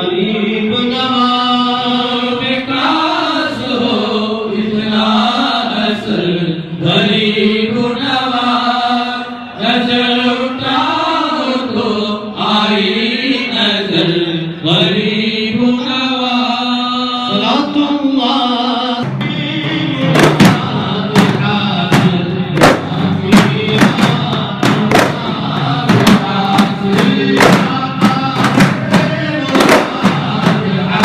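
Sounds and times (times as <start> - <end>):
men chanting together: 0.0 - 31.0.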